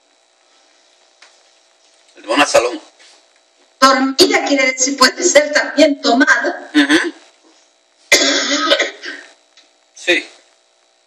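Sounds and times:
woman coughing: 6.8s - 7.2s, 8.1s - 9.3s.

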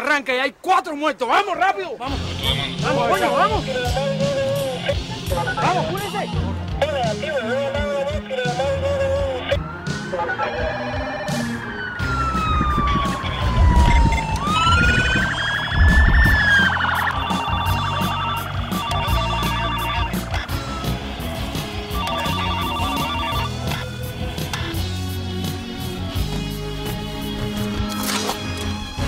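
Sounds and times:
police siren wailing: 8.6s - 23.9s.

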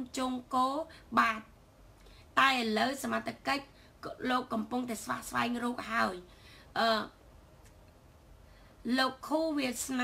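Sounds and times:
woman speaking: 0.0s - 1.6s, 2.2s - 7.2s, 8.8s - 10.0s.

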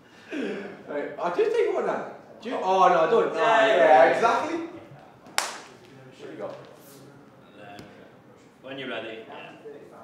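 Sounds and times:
hand clap: 5.3s - 5.9s.

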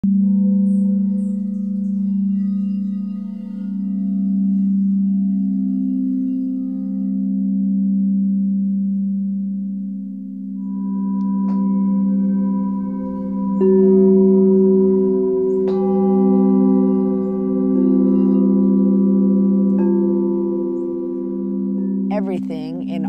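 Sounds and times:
singing bowl low tone: 0.0s - 22.2s
higher-pitched singing bowl struck: 0.1s - 8.1s, 10.6s - 22.1s.

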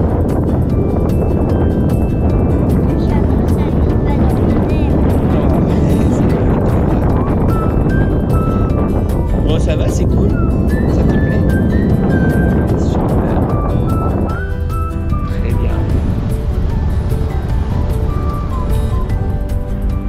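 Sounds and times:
music: 0.0s - 20.0s
wind rushing over microphone: 0.0s - 20.0s.

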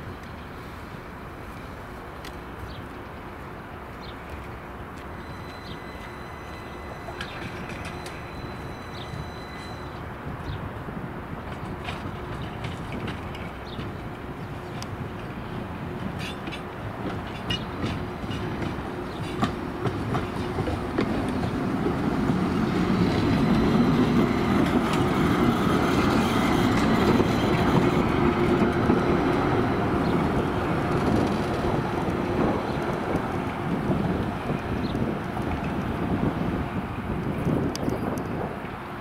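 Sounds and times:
tram wheels rumbling on rails: 0.0s - 39.0s.

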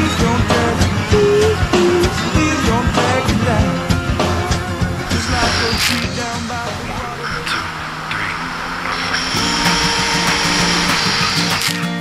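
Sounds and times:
jet ski engine whir: 0.0s - 12.0s
music playing: 0.0s - 12.0s.

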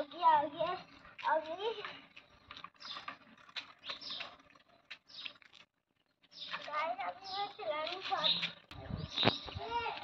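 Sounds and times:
bicycle clicking and rattling: 0.0s - 10.0s.

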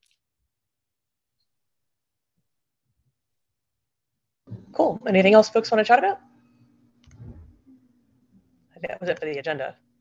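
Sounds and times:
faint steady hum: 2.5s - 10.0s
low muffled noise: 4.5s - 10.0s.

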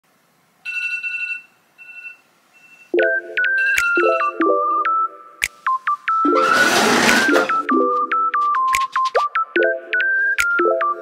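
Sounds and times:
phone alarm beep: 0.7s - 5.1s
synth music with chords: 3.0s - 11.0s.

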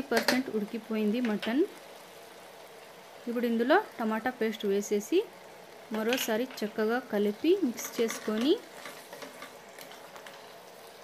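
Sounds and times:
curry sizzling in a pot: 0.0s - 11.0s
wooden spatula stirring: 7.7s - 11.0s.

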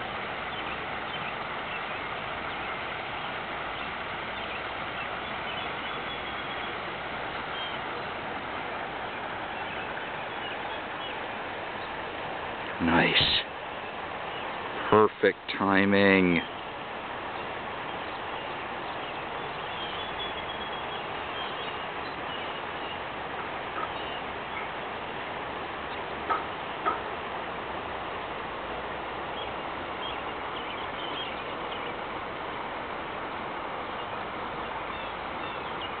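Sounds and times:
small birds chirping: 0.0s - 36.0s
steady hiss: 0.0s - 36.0s.

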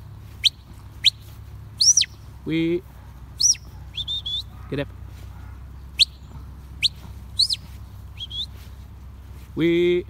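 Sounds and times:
whistled sheepdog commands: 3.4s - 4.9s.

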